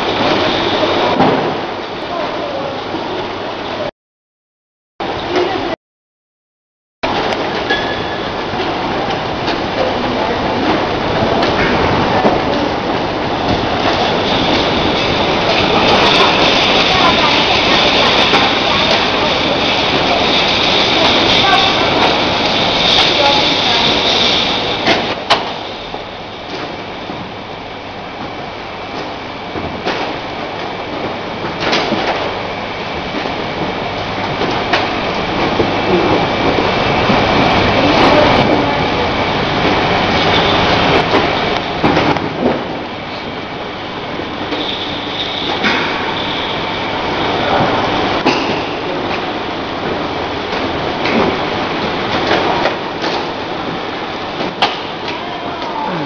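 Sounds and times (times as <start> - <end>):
bottles rattling on conveyor: 7.1 - 25.8, 29.0 - 43.4, 44.1 - 56.0.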